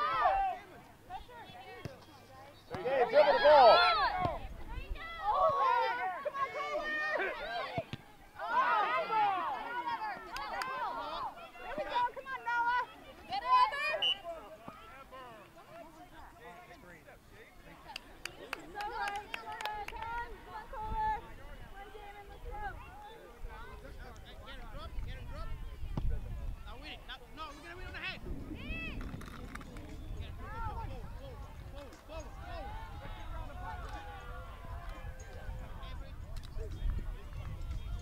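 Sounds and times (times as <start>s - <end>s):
voices calling and shouting: 0.0s - 38.0s.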